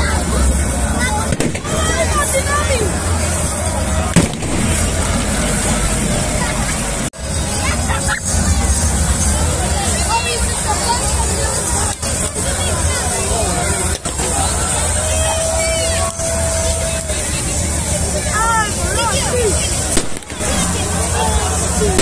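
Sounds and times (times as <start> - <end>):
crowd shouting and calling: 0.0 - 22.0
music: 0.0 - 22.0
sharp bang: 1.3 - 2.3, 4.1 - 7.2.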